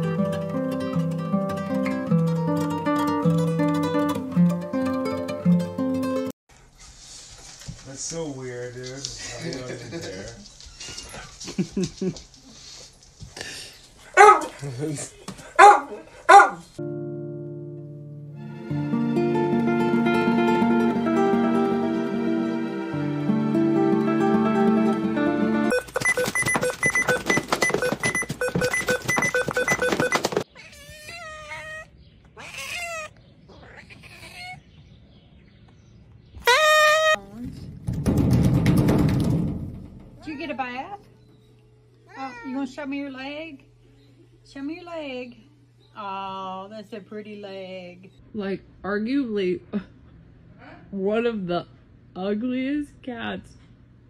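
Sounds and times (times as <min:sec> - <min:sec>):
music with repeating notes: 0:16.8 - 0:25.8
cat meowing: 0:30.5 - 0:34.6
dog whimpering: 0:30.6 - 0:34.6, 0:42.1 - 0:42.6
short high call: 0:36.4 - 0:37.2.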